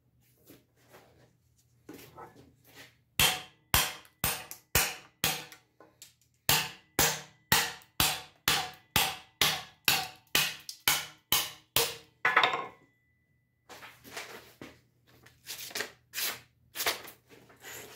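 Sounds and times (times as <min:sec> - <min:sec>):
hammer striking steel blade: 0:06.5 - 0:12.7.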